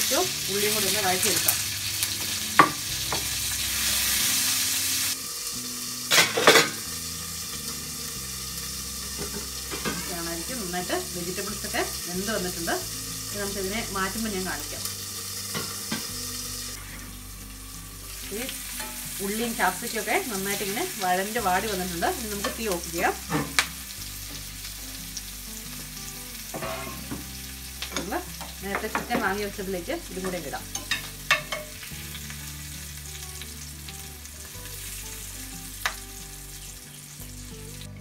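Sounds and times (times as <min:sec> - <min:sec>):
food sizzling in a frying pan: 0:00.0 - 0:38.0.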